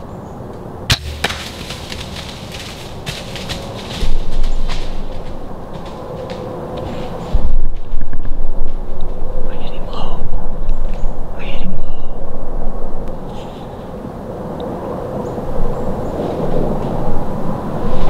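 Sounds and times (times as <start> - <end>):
rustling and crackling: 0.9 - 9.2.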